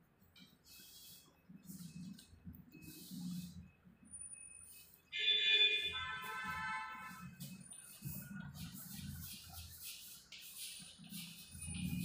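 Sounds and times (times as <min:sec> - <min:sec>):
loud electronic alarm tone: 0:04.0 - 0:07.8.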